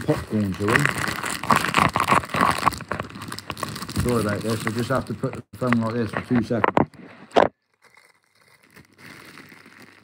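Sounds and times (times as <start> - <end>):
plastic bag crinkling: 0.0 - 6.6, 7.5 - 10.0.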